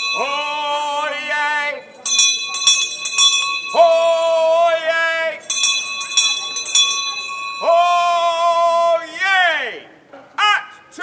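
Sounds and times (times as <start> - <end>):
handbell ringing: 0.0 - 4.5, 5.4 - 8.4
man shouting: 7.6 - 9.8, 10.4 - 11.0.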